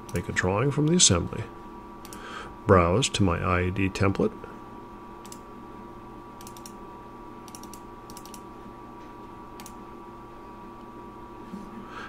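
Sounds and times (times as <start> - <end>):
faint electrical hum: 0.0 - 12.0
computer mouse clicks: 5.2 - 5.4, 6.4 - 6.8, 7.5 - 8.4, 9.6 - 9.8.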